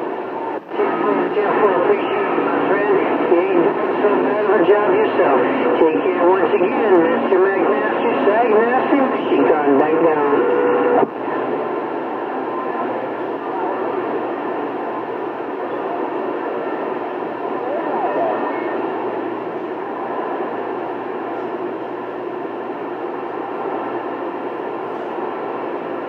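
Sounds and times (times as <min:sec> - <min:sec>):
garbled distant radio signals: 0:00.0 - 0:26.0
radio static hiss: 0:00.0 - 0:26.0.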